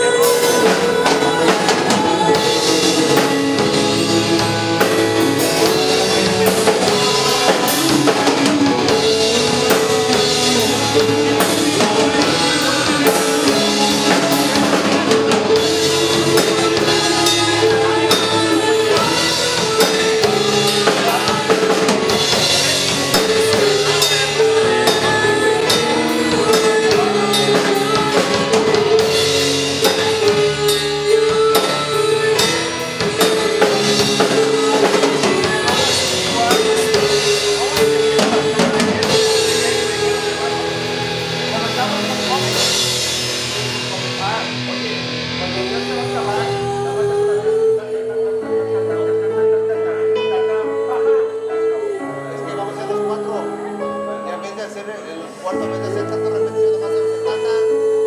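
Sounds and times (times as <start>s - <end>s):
rock band playing: 0.0s - 58.0s.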